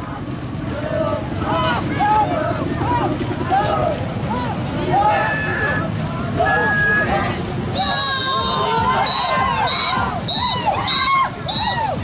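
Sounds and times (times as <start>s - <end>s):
voices shouting calls: 0.8s - 12.0s
wind noise on microphone: 5.9s - 12.0s
whistle-like tone: 6.6s - 12.0s.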